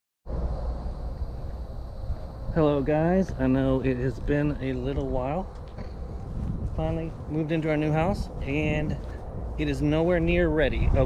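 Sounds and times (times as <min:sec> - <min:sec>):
low outdoor rumble: 0:00.3 - 0:11.0
faint hiss: 0:00.4 - 0:05.5.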